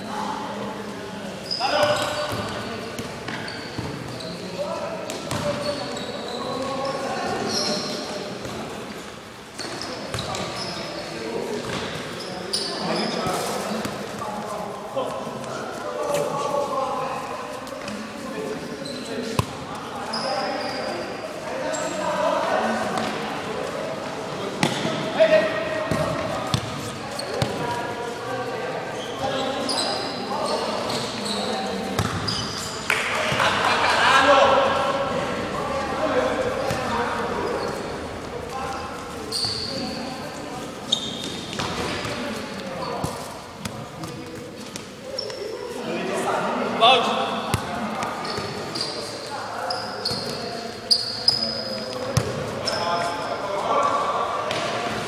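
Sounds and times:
players' voices: 0.0 - 55.0
shoes squeaking on court floor: 1.2 - 22.2, 22.8 - 33.0, 34.7 - 45.9, 47.1 - 55.0.

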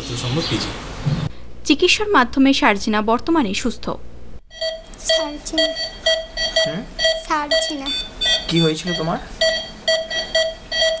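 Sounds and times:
electronic alarm beeping: 4.5 - 11.0.

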